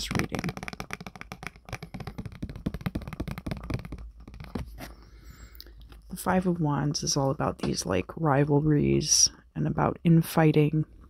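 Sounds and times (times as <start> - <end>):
fingers handling a card: 0.0 - 5.1.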